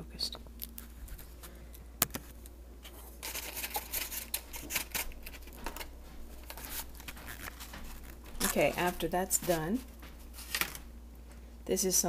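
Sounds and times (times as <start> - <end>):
plastic jug rustling and clattering: 3.1 - 10.9.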